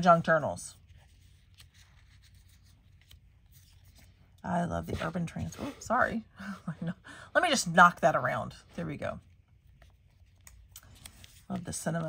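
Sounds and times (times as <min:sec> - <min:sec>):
paper stickers handled: 0:00.8 - 0:04.4, 0:09.5 - 0:12.0.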